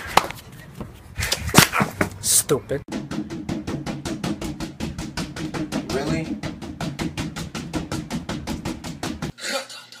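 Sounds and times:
rapid drumroll: 0:02.9 - 0:09.3.

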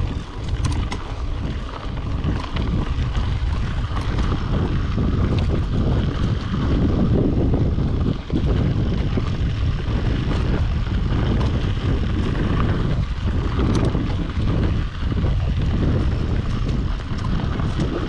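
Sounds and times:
bike clicks and rattles: 0:00.0 - 0:18.0
mountain bike tyre rumble: 0:00.0 - 0:18.0
wind noise on microphone: 0:00.0 - 0:18.0.

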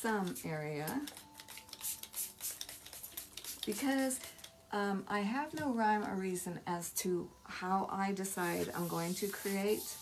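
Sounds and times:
faint background music: 0:00.0 - 0:10.0
spray bottle spritzing: 0:01.4 - 0:04.2, 0:08.8 - 0:10.0.

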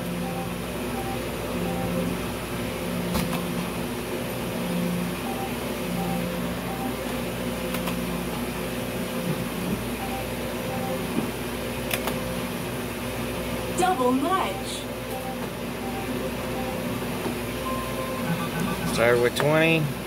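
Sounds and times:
steady hum: 0:00.0 - 0:20.0
slot machine beeping jingle: 0:00.2 - 0:02.1, 0:05.2 - 0:07.0, 0:10.0 - 0:11.0, 0:17.6 - 0:19.3.

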